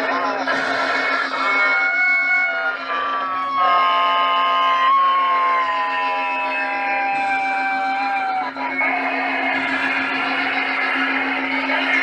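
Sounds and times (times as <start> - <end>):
electronic drone sliding downward: 4.6 - 12.0
low hum: 7.0 - 12.0.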